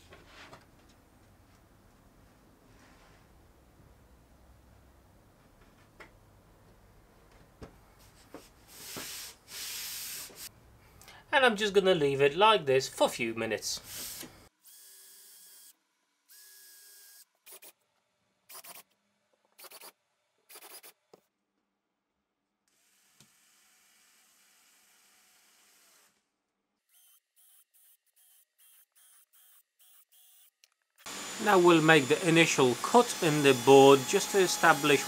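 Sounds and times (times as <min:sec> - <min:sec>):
cordless drill whining: 0:26.9 - 0:35.0.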